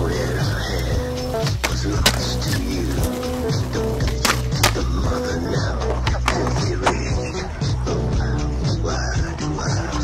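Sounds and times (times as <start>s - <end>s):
music soundtrack: 0.0s - 10.0s
skateboard wheels rolling on concrete: 0.0s - 10.0s
skateboard clacking on pavement: 0.2s - 7.2s.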